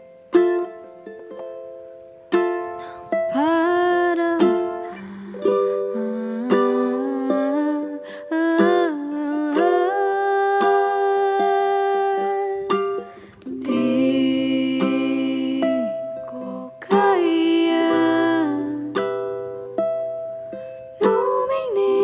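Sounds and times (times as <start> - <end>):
plucked strings: 0.0 - 22.0
person singing lullaby: 2.7 - 19.2, 20.9 - 22.0.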